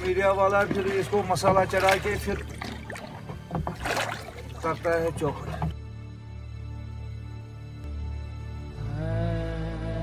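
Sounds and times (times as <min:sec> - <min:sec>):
paddle in water: 0:00.0 - 0:05.9.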